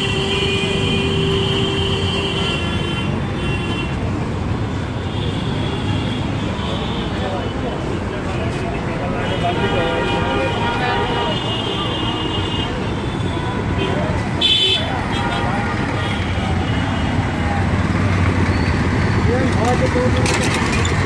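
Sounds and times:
vehicle horn sounding: 0.0 - 4.0
street traffic: 0.0 - 21.0
passers-by talking: 6.6 - 21.0.

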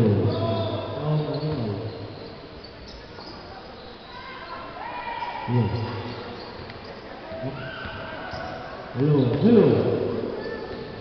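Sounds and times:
basketball crowd and court noise: 0.0 - 11.0.

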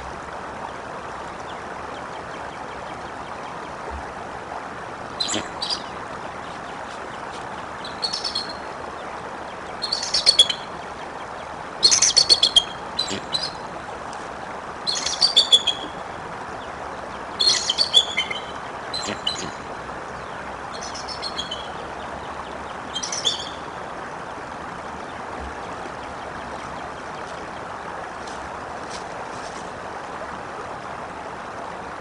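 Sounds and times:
running water: 0.0 - 32.0
eagle chittering calls: 7.8 - 8.6, 9.8 - 10.7, 11.8 - 13.6, 14.9 - 16.0, 17.4 - 19.7, 20.7 - 21.9, 22.9 - 23.7.

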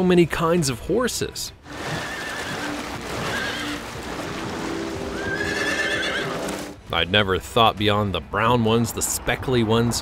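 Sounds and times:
horses splashing through water: 1.6 - 6.8
horse whinnying: 1.7 - 4.0, 5.0 - 6.6.

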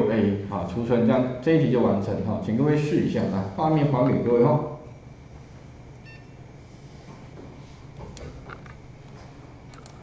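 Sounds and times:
steady low hum: 0.0 - 10.0
short electronic beep: 6.0 - 6.4.

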